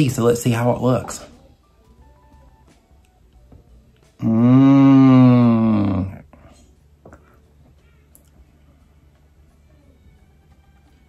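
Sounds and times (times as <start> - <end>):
man humming: 4.2 - 6.3.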